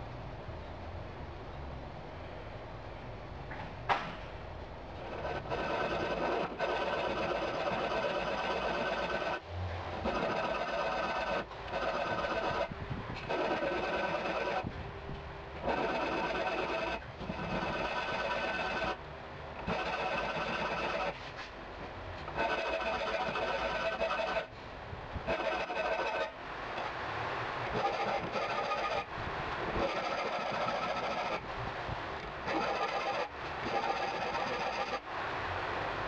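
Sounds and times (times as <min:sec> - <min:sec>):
file scraping steel blade: 0:05.0 - 0:14.7, 0:15.6 - 0:19.0, 0:19.6 - 0:21.5, 0:22.3 - 0:24.5, 0:25.2 - 0:26.4, 0:27.7 - 0:29.1, 0:29.7 - 0:31.4, 0:32.4 - 0:35.0.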